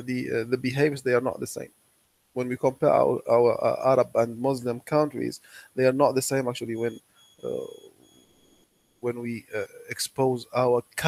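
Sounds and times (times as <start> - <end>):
man saying uh: 0.0 - 1.7, 2.4 - 7.7, 9.1 - 11.0
faint thin high tones: 5.2 - 10.2.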